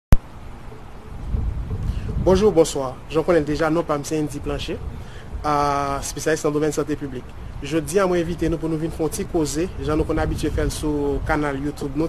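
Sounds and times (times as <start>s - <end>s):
wind buffeting microphone: 0.2s - 12.0s.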